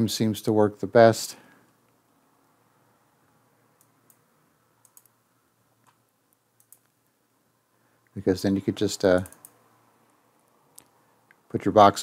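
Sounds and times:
computer mouse clicks: 3.8 - 4.2, 4.8 - 5.2, 5.8 - 7.0, 9.1 - 10.2.

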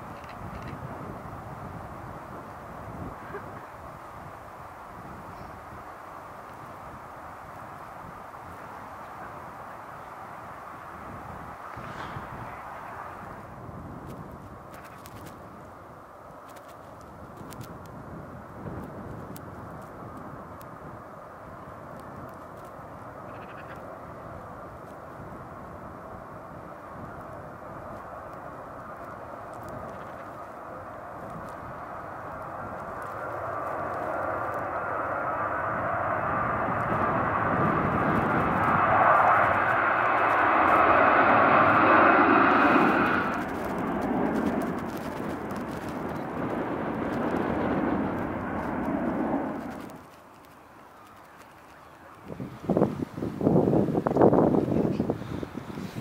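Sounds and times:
jet engine roar with fan whine: 0.0 - 56.0
wind gusts on microphone: 0.0 - 56.0.

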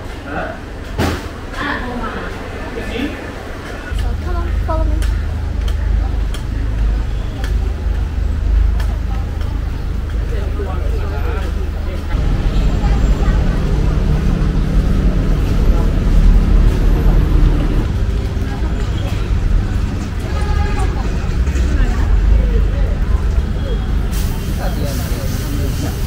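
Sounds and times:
low traffic rumble: 0.0 - 26.0
people talking: 1.5 - 26.0.

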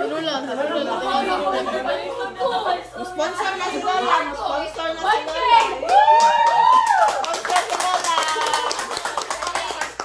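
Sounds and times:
people clapping: 5.1 - 10.0.

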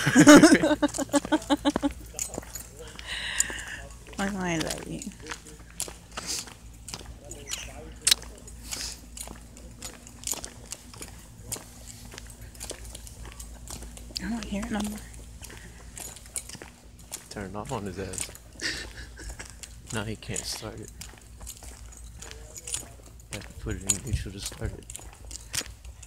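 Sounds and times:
people laughing: 0.0 - 3.8, 17.8 - 19.6.

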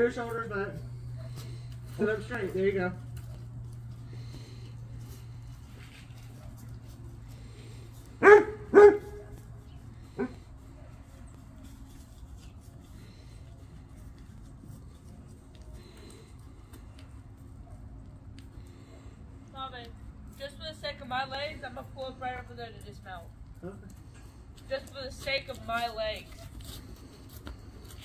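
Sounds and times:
dog barking: 8.2 - 9.4, 10.2 - 10.4.

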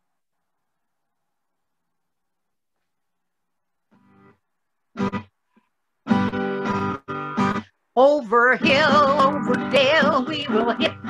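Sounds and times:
acoustic guitar strumming: 5.0 - 5.3, 6.0 - 11.0.

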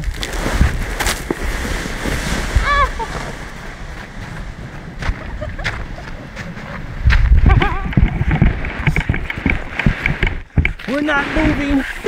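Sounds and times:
sled scraping over snow: 0.0 - 12.0
person laughing: 2.6 - 3.2, 5.1 - 6.4, 7.4 - 8.4.

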